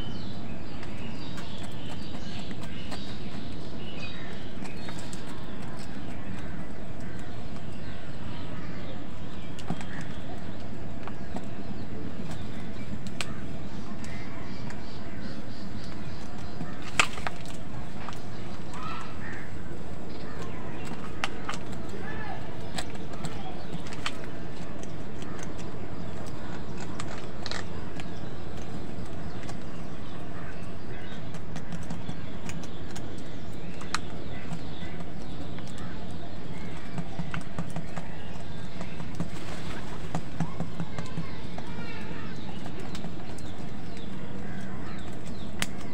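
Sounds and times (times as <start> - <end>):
beaks pecking plastic bowl: 0.0 - 45.9
low background noise: 0.0 - 45.9
crows cawing: 18.7 - 20.6.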